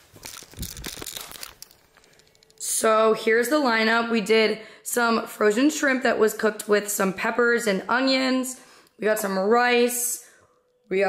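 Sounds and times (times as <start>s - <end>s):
rustling crinkling handling noise: 0.0s - 2.6s
small crackles: 0.0s - 2.7s.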